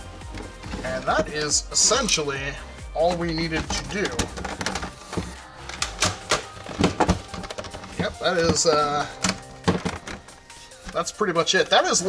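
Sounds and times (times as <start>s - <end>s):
plastic parts clicking and knocking: 0.2s - 1.9s, 3.1s - 11.1s.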